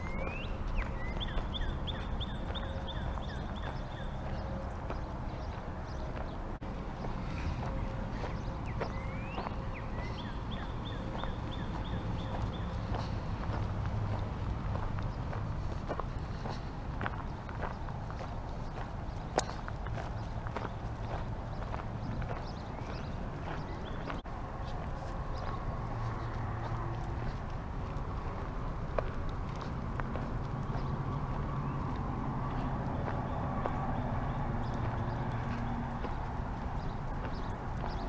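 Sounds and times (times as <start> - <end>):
footsteps on gravel: 0.0 - 38.0.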